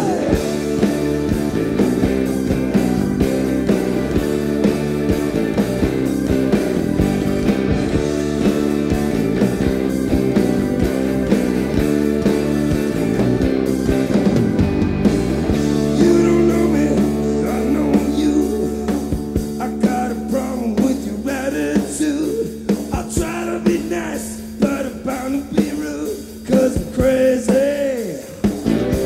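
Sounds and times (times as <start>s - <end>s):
keyboard chords: 0.0s - 21.3s
electric guitar chords: 0.0s - 29.0s
steady drum beat: 0.0s - 29.0s.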